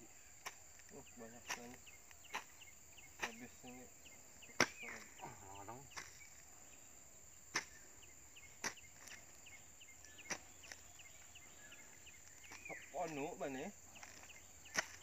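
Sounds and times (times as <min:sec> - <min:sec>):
hoe chopping into soil: 0:00.4 - 0:00.8, 0:01.4 - 0:02.6, 0:03.2 - 0:03.6, 0:04.5 - 0:06.4, 0:07.5 - 0:09.3, 0:10.1 - 0:10.8, 0:14.0 - 0:15.0.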